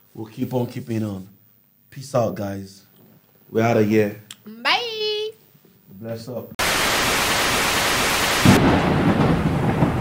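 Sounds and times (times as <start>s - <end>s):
static hiss: 6.0s - 8.7s
thunder and rain: 6.6s - 10.0s.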